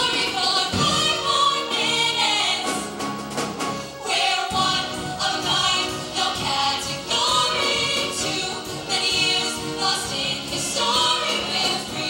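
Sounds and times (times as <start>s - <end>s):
girls singing together: 0.0s - 2.9s, 4.0s - 12.0s.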